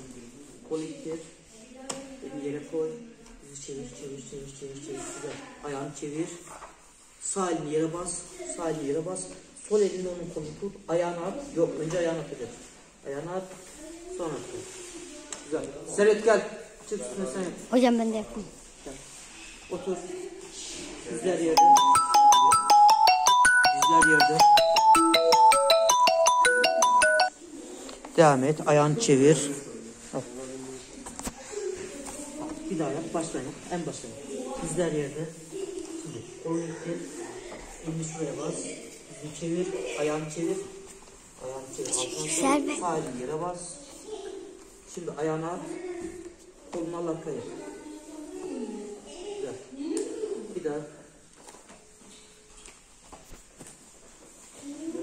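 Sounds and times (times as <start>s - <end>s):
phone ringtone melody: 21.6s - 27.4s.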